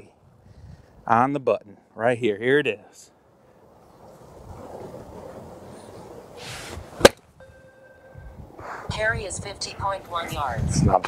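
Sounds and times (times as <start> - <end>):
golf club whoosh: 4.4 - 7.2
club striking golf ball: 7.0 - 7.2
faint steady tone: 7.4 - 8.6.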